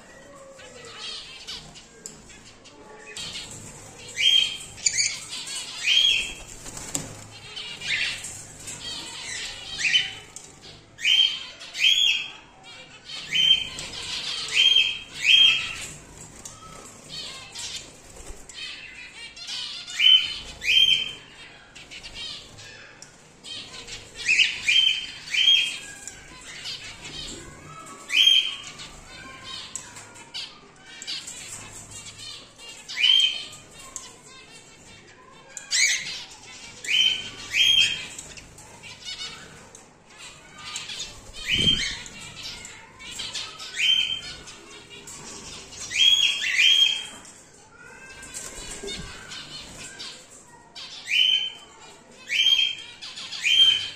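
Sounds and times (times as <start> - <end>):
faint continuous chirping: 0.0 - 53.9
cockatiels calling shrilly: 35.2 - 53.9.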